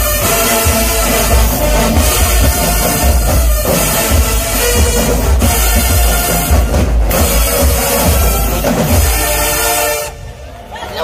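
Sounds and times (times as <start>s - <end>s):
heavy bass thumps: 0.0s - 9.3s
horn-like chords: 0.0s - 10.5s.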